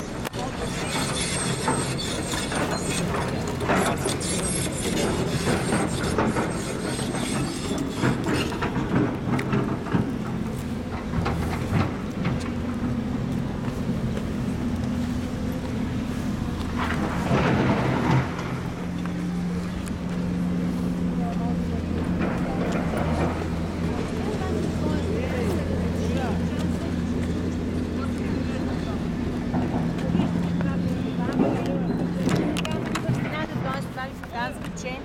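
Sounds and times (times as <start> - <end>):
people talking: 0.0 - 6.2, 21.1 - 35.0
engine humming: 0.0 - 35.0.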